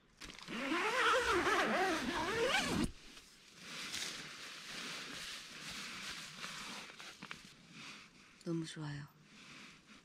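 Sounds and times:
tent zipper being unzipped: 0.3s - 3.0s.

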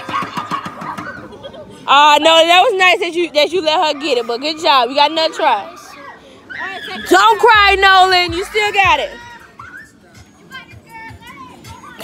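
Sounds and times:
children's excited voices: 0.0s - 12.0s.

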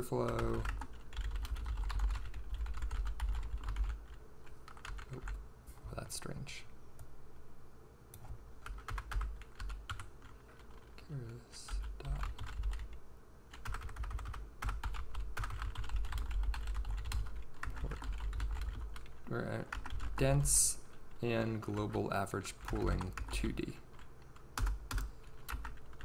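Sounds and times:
typing on computer keyboard: 0.0s - 5.4s, 8.6s - 10.9s, 11.7s - 20.2s, 21.6s - 26.0s.

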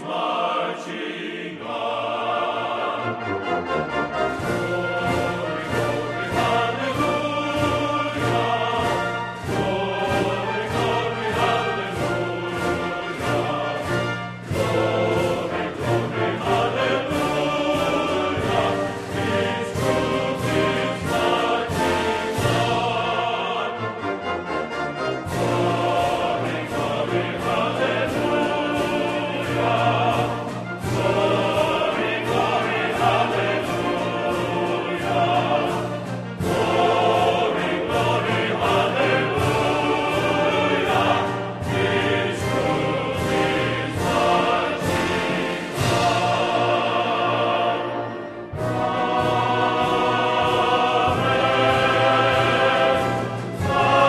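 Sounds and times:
choir singing with orchestra: 0.0s - 54.0s.

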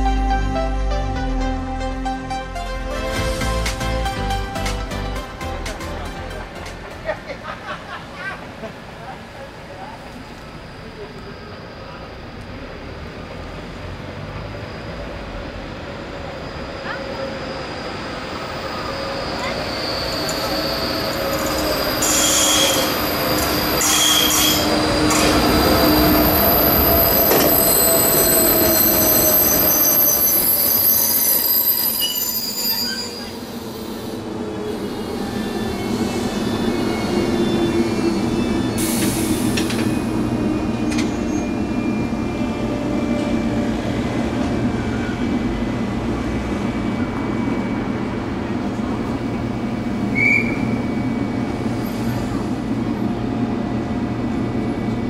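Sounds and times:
train brakes and wheels squealing: 10.0s - 45.3s, 46.6s - 52.7s
train equipment humming: 15.0s - 55.0s.

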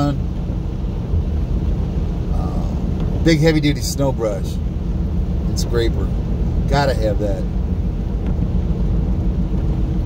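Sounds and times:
car rumble from inside cabin: 0.0s - 10.0s
tyres on wet pavement: 0.0s - 10.0s.

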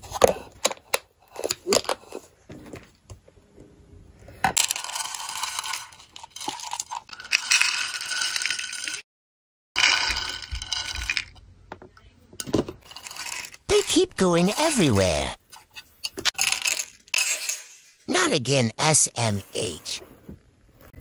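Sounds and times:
beads rattling into plastic box: 4.6s - 9.0s, 9.8s - 11.4s, 12.8s - 13.9s, 16.4s - 17.8s.

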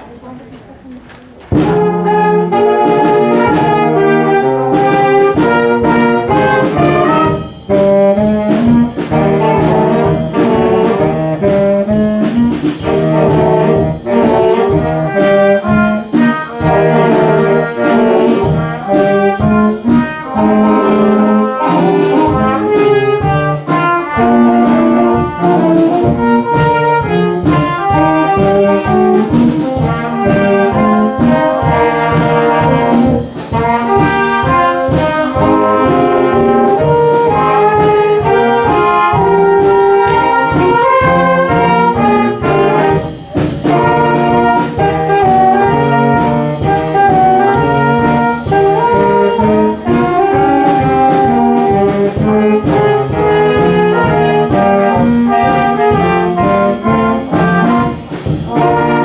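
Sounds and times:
orchestra of strings and saxophones: 1.6s - 59.0s.

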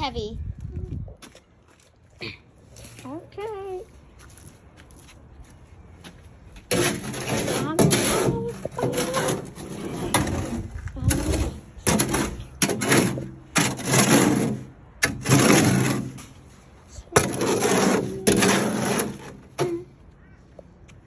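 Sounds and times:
shovel scraping wet cement: 6.7s - 19.8s.

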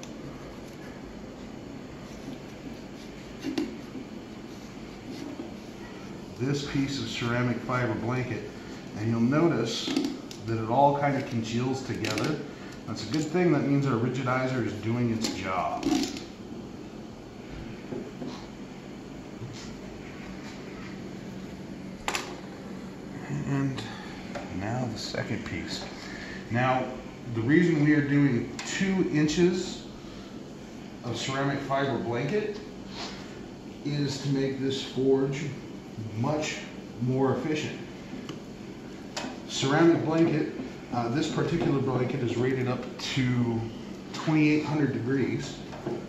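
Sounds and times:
low room hum: 0.0s - 46.0s.

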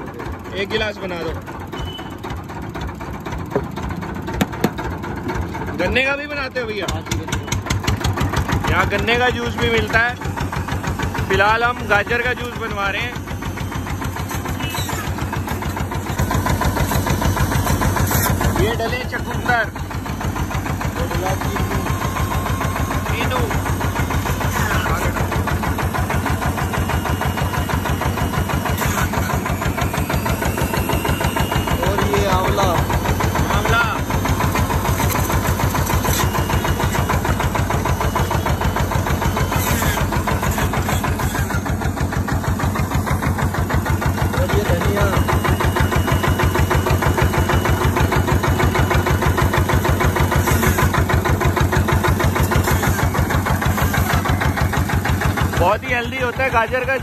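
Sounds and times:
diesel engine chugging: 0.0s - 57.0s
electric juicer motor: 1.2s - 56.0s.

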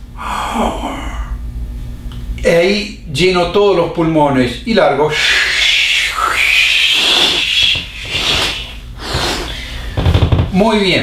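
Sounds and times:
man exhaling forcefully: 0.2s - 1.4s, 6.1s - 10.2s.

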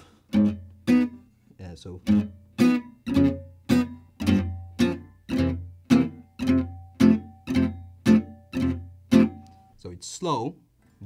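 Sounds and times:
acoustic guitar rhythm strumming: 0.0s - 9.8s.

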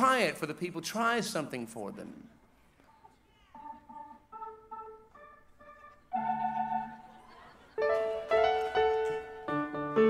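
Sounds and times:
organ chords: 3.6s - 10.0s.

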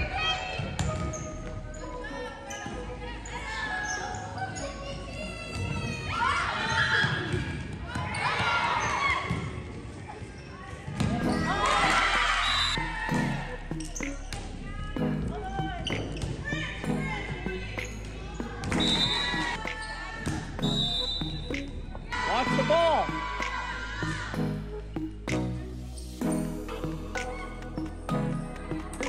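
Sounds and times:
people shouting and cheering: 0.0s - 9.6s, 10.9s - 25.7s, 26.7s - 29.0s.

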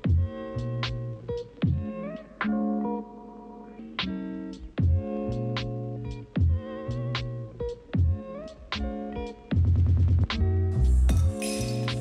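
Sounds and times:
background music with a beat: 0.0s - 3.1s, 4.0s - 12.0s
ice cubes rattling in shaker: 11.2s - 12.0s.

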